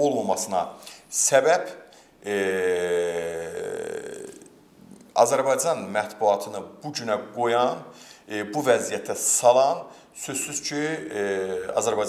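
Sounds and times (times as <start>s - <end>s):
man's drawn-out hesitation sound: 2.2s - 4.5s.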